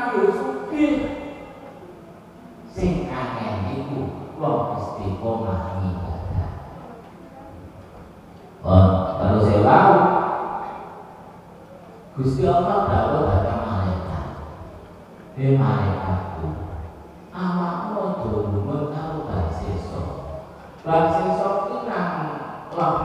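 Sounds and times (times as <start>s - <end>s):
man speaking through microphone: 0.0s - 1.4s, 2.7s - 6.8s, 8.6s - 10.9s, 12.1s - 14.7s, 15.4s - 17.0s, 17.8s - 23.0s.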